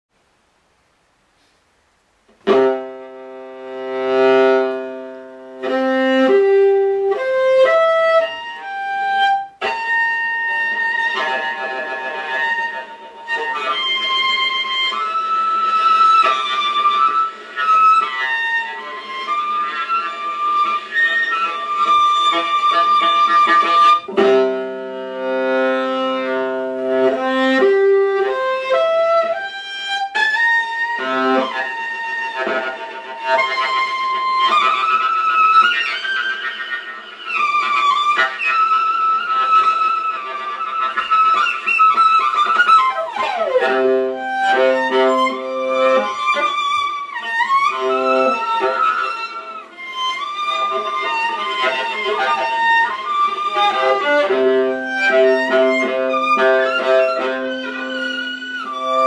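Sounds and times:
solo viola harmonics: 2.4 - 59.0.

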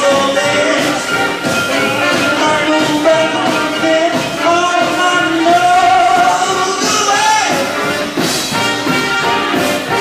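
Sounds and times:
swing jazz with brass: 0.0 - 10.0.

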